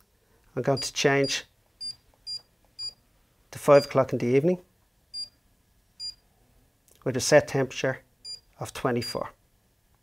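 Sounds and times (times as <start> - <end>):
high key-press beeps: 1.8 - 3.0.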